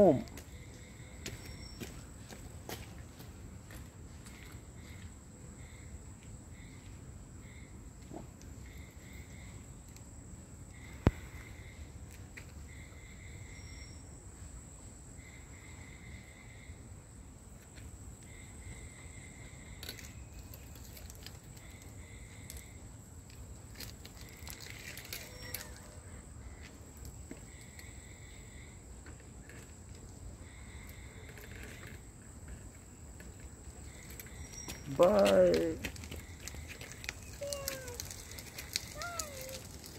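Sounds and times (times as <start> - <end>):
insects high-pitched trill: 0.0 - 2.5, 3.7 - 8.0, 8.6 - 39.9
lower insect call: 0.0 - 39.9.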